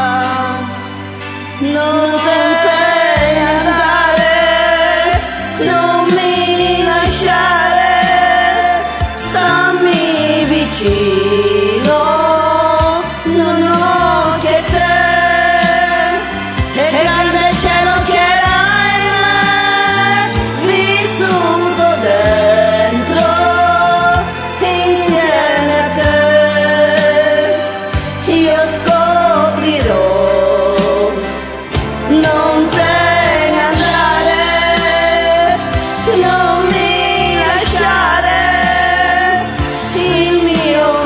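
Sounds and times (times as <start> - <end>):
instrumental backing track: 0.0 - 41.0
woman singing pop ballad: 0.0 - 41.0.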